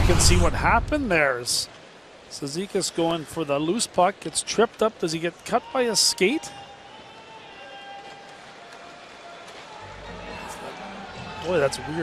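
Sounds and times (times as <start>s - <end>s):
arena ambience: 0.0s - 12.0s
faint music: 2.3s - 12.0s.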